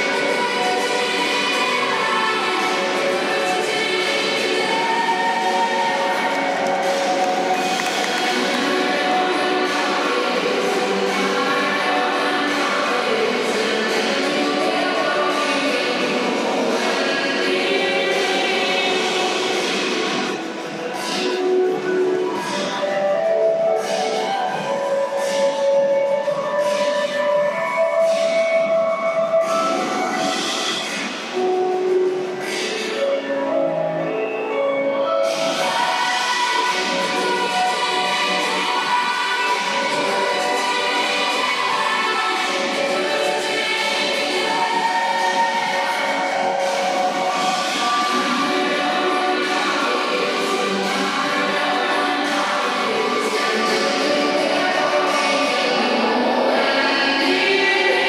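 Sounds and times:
music with choir-like voices: 0:00.0 - 0:58.0.

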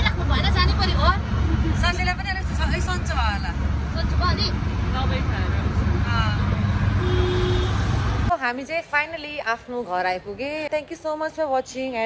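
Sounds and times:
engine and road rumble: 0:00.0 - 0:08.4.

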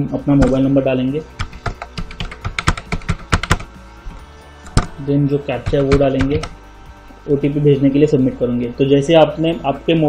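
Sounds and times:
computer keyboard key clicks: 0:01.4 - 0:03.7.

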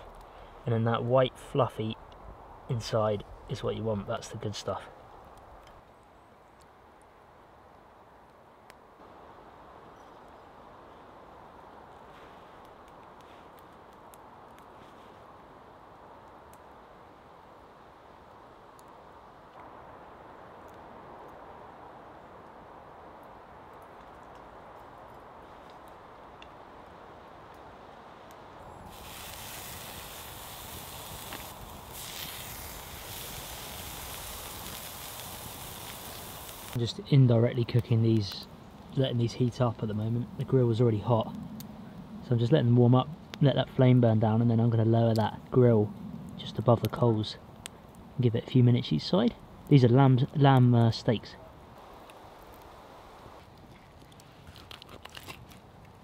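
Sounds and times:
campfire crackling: 0:00.0 - 0:56.0
faint rustles and clicks: 0:11.9 - 0:15.3, 0:51.8 - 0:56.0.

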